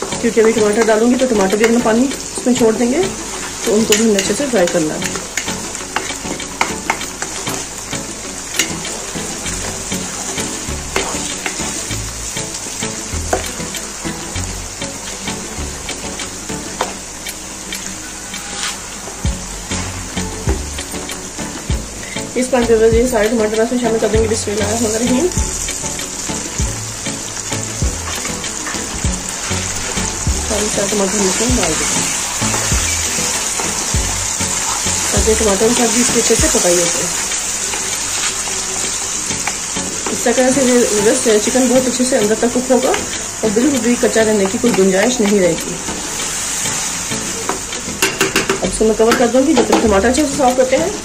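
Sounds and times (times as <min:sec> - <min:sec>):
background music with slow beat: 0:00.0 - 0:51.0
meat and onions sizzling in oil: 0:00.0 - 0:51.0.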